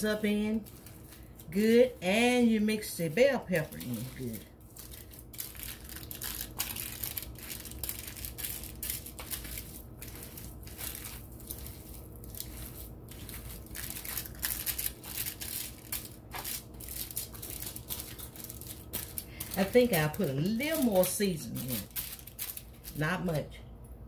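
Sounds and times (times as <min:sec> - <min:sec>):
hands kneading ground meat: 0:00.0 - 0:22.0.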